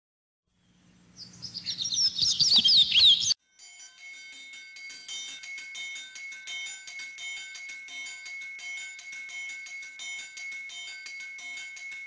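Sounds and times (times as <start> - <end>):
bird chirping and whistling: 1.2 - 3.4
faint music with bell tones: 3.3 - 12.0.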